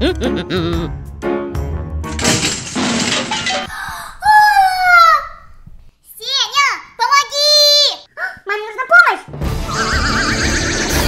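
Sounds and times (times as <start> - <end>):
breaking crash: 2.1 - 3.7.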